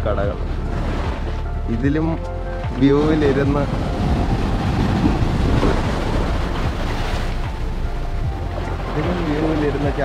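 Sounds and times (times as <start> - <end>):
wind rumbling on microphone: 0.0 - 10.0
ocean surf breaking on sand: 3.1 - 7.6.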